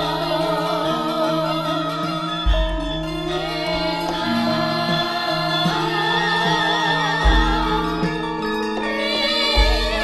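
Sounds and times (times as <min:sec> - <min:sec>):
gamelan music: 0:00.0 - 0:10.0
voices singing: 0:00.0 - 0:10.0.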